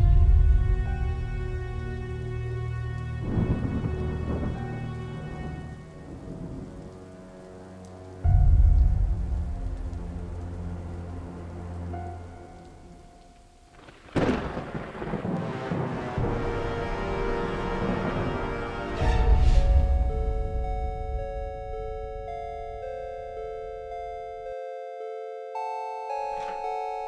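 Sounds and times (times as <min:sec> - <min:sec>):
loud thunder crash: 0:00.0 - 0:01.4, 0:03.2 - 0:04.8, 0:13.8 - 0:20.6
rolling thunder: 0:00.0 - 0:07.3, 0:08.2 - 0:11.0, 0:13.8 - 0:22.3
rain: 0:00.0 - 0:24.4
soft sustained music: 0:00.0 - 0:27.0.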